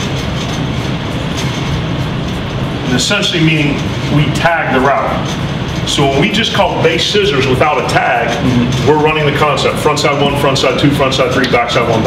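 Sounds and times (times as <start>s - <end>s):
low rumbling background noise: 0.0s - 12.0s.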